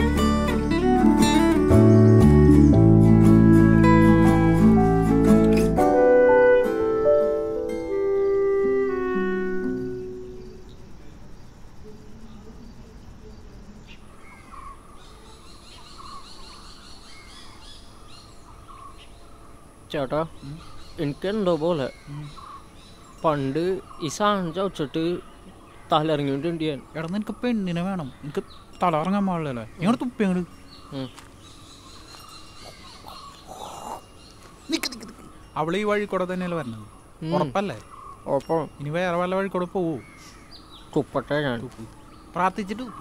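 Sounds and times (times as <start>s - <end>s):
birds chirping and calling: 0.0s - 5.8s, 7.6s - 43.0s.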